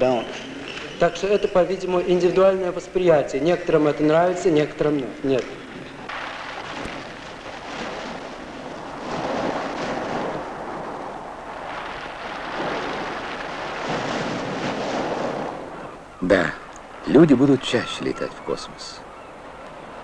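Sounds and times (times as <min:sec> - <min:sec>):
waves breaking on pebble beach: 0:05.5 - 0:18.0.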